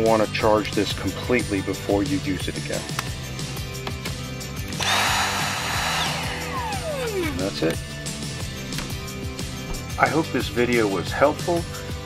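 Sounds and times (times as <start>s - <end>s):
vacuum motor whining: 4.8s - 7.8s.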